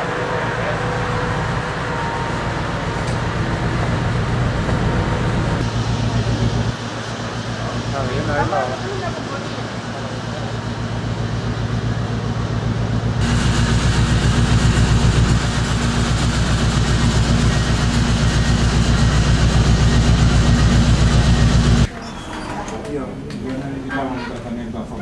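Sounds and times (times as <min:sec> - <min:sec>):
ship machinery humming and throbbing: 0:00.0 - 0:21.9.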